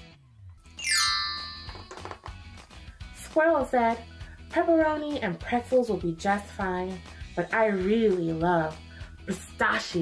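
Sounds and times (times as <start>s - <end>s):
soft background music: 0.0s - 10.0s
chime sparkle ringing tone: 0.8s - 2.0s.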